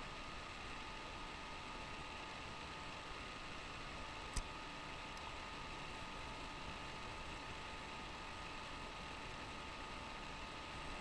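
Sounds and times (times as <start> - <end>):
faint steady whine: 0.0 - 11.0.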